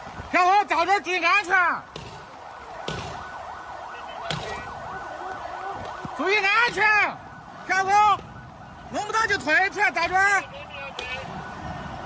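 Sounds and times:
faint emergency siren: 0:00.0 - 0:12.0.

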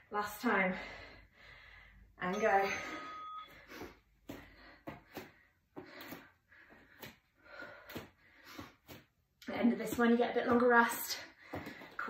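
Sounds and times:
woman breathing quickly: 0:00.4 - 0:02.2, 0:02.8 - 0:09.2, 0:11.1 - 0:12.0.

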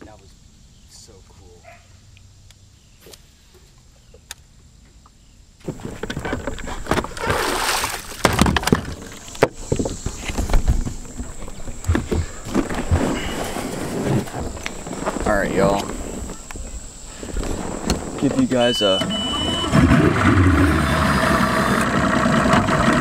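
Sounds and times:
knocks and clunks from mount: 0:08.2 - 0:10.9
water splashing off motor: 0:19.0 - 0:23.0.

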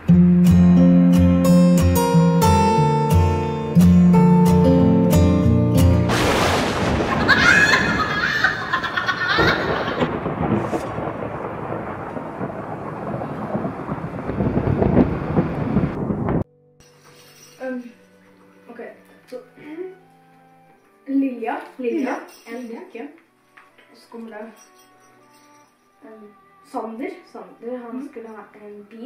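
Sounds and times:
loud rumbling rush of noise: 0:09.4 - 0:16.4.

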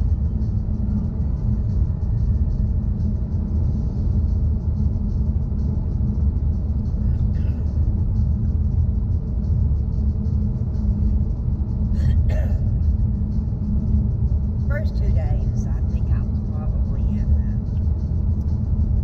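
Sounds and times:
car engine rumble: 0:00.0 - 0:19.0.

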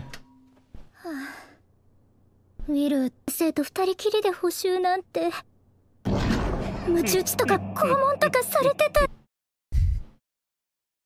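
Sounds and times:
breathy sigh: 0:01.0 - 0:01.6
person speaking: 0:06.9 - 0:09.2.

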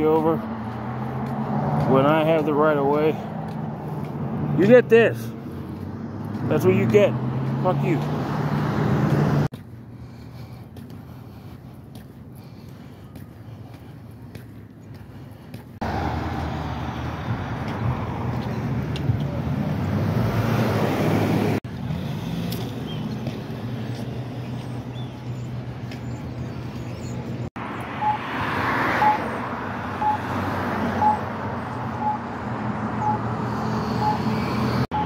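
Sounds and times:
road traffic roar: 0:00.0 - 0:35.0.

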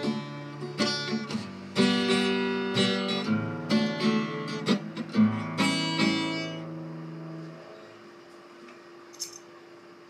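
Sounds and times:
acoustic guitar chord ringing: 0:00.0 - 0:07.8.

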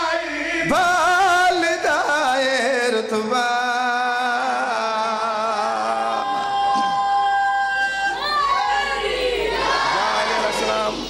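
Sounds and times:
man chanting verse: 0:09.7 - 0:11.0.

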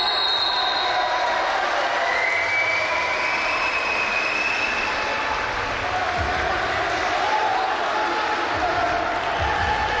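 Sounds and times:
faint held shout or whistle: 0:00.0 - 0:01.2
crowd voices din: 0:00.0 - 0:10.0.

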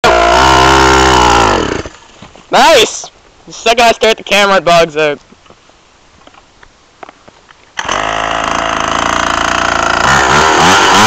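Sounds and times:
mini dirt bike engine stalling: 0:00.0 - 0:02.0, 0:07.8 - 0:11.0.

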